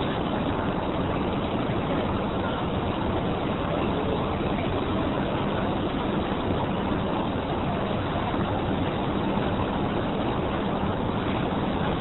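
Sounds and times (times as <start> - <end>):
crowd noise: 0.0 - 12.0
traffic roar: 0.0 - 12.0.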